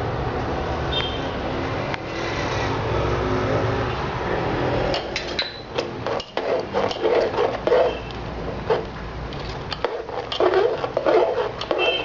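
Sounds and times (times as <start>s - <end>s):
steady rushing hum: 4.1s - 11.8s
ladle scraping metal pot: 5.0s - 12.0s.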